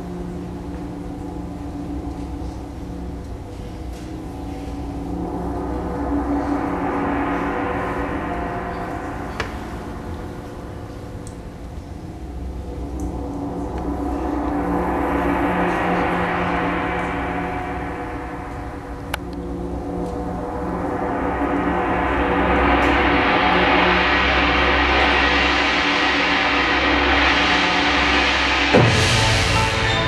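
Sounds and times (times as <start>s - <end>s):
low held notes: 0.0s - 30.0s
orchestral gong rolled shimmering: 0.2s - 30.0s.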